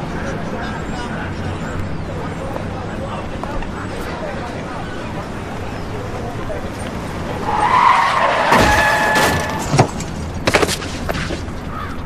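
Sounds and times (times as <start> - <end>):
car tyres squealing: 0.0 - 10.7.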